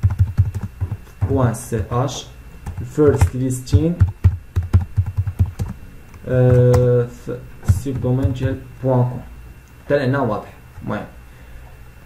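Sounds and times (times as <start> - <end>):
computer keyboard typing: 0.0 - 1.4, 2.6 - 8.6.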